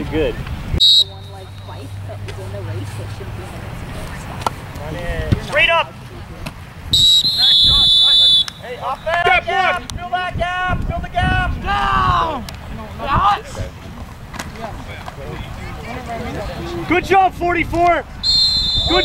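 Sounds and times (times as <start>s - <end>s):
referee's whistle blast: 0.8s - 1.7s, 6.9s - 9.2s, 18.2s - 19.0s
voices shouting: 7.0s - 13.6s, 15.4s - 19.0s.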